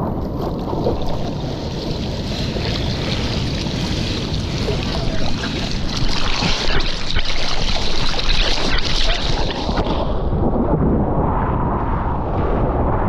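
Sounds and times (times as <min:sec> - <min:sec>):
wind buffeting microphone: 0:00.0 - 0:13.0
water sloshing against surfboard: 0:00.8 - 0:10.2.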